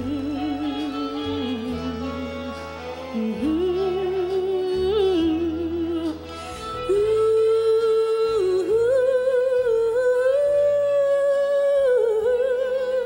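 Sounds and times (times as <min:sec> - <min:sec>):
soft backing music: 0:00.0 - 0:13.0
woman singing through microphone: 0:00.0 - 0:13.0.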